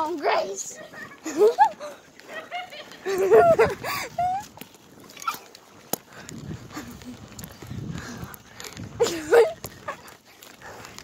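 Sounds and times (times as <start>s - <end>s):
bicycle tyre and wind rumble: 0.0s - 11.0s.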